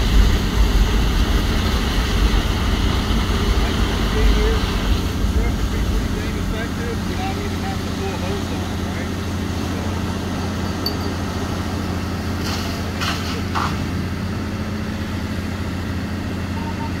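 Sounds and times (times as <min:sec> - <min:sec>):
truck engine and pump droning: 0:00.0 - 0:17.0.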